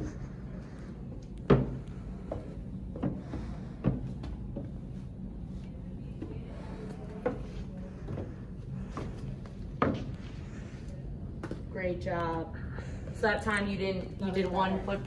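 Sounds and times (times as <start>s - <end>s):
footsteps on wooden stairs: 1.4s - 5.1s, 7.1s - 10.3s.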